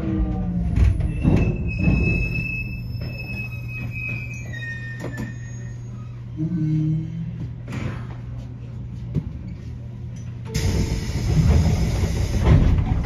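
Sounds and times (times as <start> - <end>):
electric train braking whine: 10.5 - 12.5.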